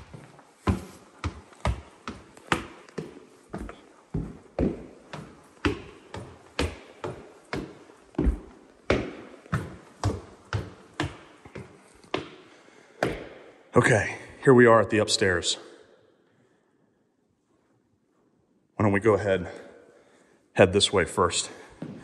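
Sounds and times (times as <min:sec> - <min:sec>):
footsteps on wooden stairs: 0:00.0 - 0:13.6.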